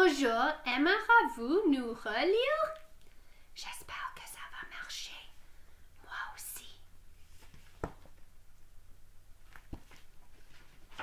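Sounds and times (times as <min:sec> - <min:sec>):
woman whispering: 0:03.6 - 0:05.4, 0:06.0 - 0:06.9.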